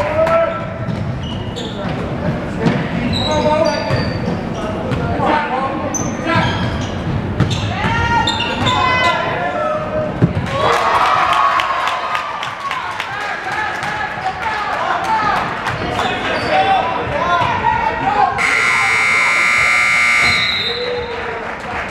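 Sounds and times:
players and spectators voices: 0.0s - 21.9s
scoreboard buzzer: 18.4s - 20.6s.

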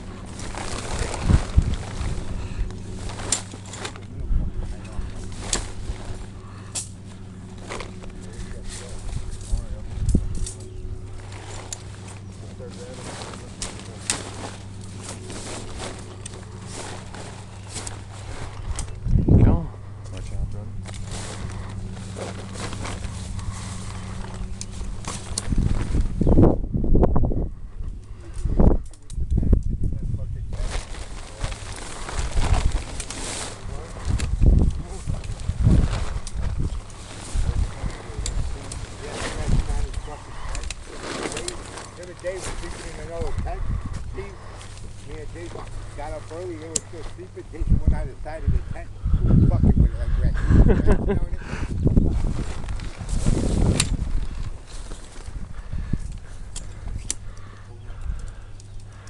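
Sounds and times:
tent fabric rustling: 0.0s - 19.0s, 19.8s - 26.5s, 30.5s - 49.0s, 50.6s - 58.0s
steady low hum: 0.0s - 59.0s.

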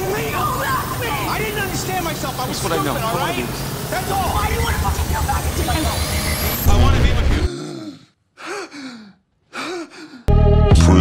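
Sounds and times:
person gasping sighs: 7.5s - 10.3s.

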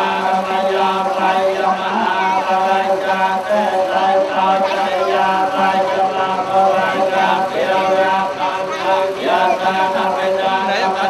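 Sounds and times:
monks chanting through microphone: 0.0s - 11.0s.

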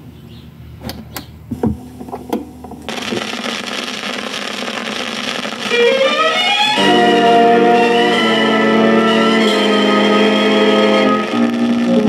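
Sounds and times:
stylus dropping on record click: 0.8s - 6.0s
record music: 1.5s - 12.0s
vinyl hiss and crackle: 1.5s - 12.0s.

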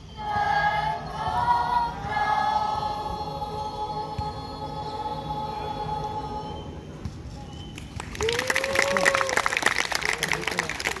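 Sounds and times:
children's choir singing chords: 0.0s - 7.0s.

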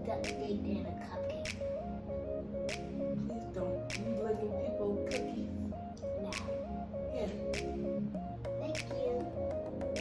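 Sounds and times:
melody over steady beat: 0.0s - 10.0s.

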